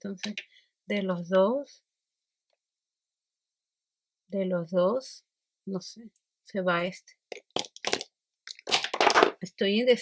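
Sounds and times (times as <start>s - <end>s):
plastic tubes clattering: 7.3s - 9.4s.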